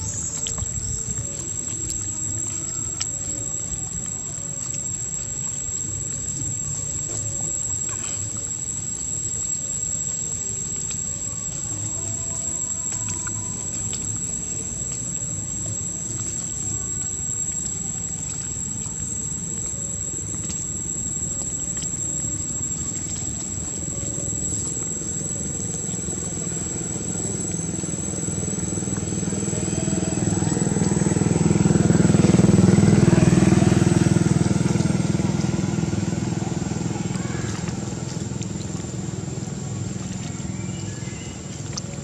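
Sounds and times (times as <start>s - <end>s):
thin high-pitched tone: 0.0s - 35.0s
steady low hum: 0.0s - 42.0s
vehicle engine passing by: 25.4s - 41.0s.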